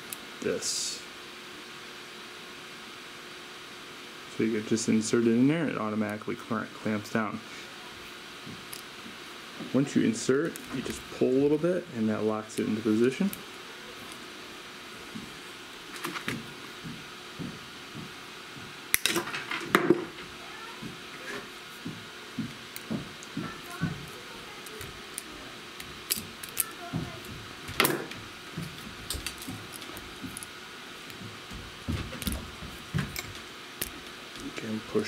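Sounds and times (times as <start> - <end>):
wire stripper clicking: 22.7 - 28.1.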